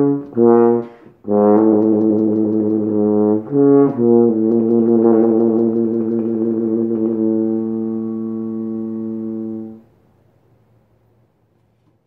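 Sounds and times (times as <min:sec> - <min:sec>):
french horn long low note: 0:00.0 - 0:09.9.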